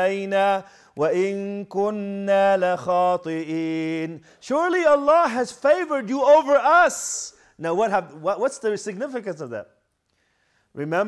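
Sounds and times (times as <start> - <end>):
man chanting melodically: 0.0 - 9.5.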